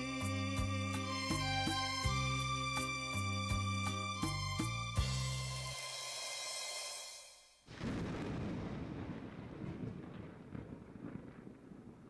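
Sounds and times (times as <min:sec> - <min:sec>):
thunder rumbling: 0:07.7 - 0:12.0.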